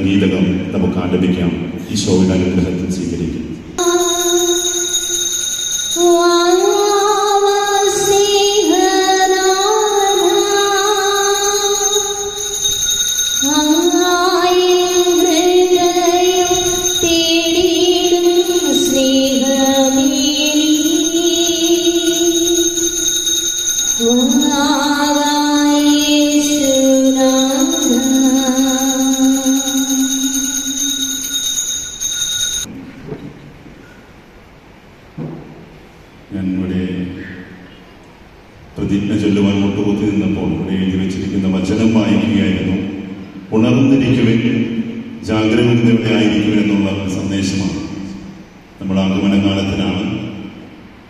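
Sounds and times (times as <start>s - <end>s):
sustained high electronic tones: 3.8s - 32.7s
person singing a hymn: 24.0s - 30.4s.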